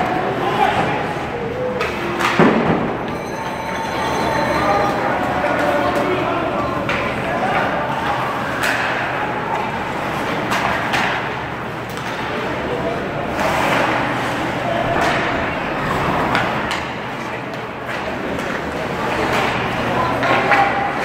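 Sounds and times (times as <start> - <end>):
spectators talking: 0.0 - 21.0
sticks and puck clacking: 1.7 - 3.6, 4.4 - 21.0.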